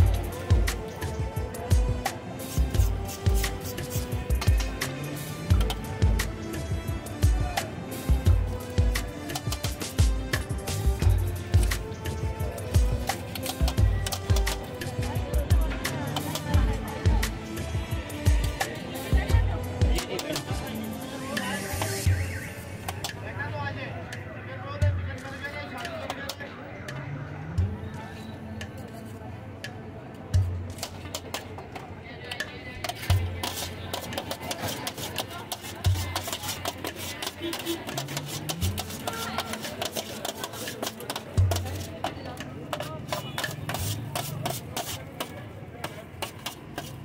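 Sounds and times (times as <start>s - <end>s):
background music: 0.0s - 45.3s
knife shaving meat off spit: 2.4s - 4.2s, 33.0s - 47.0s
voices: 13.6s - 30.3s, 31.6s - 47.0s
blade clicking against spoon and tray: 32.4s - 47.0s.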